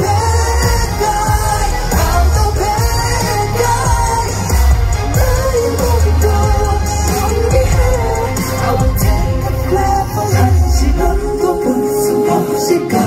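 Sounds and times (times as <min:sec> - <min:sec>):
man singing into a microphone: 0:00.0 - 0:13.0
pop backing track with heavy bass: 0:00.0 - 0:13.0.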